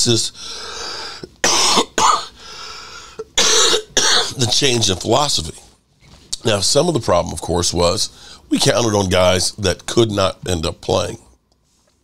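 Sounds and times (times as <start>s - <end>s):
man coughing: 1.3s - 2.4s, 3.2s - 5.0s.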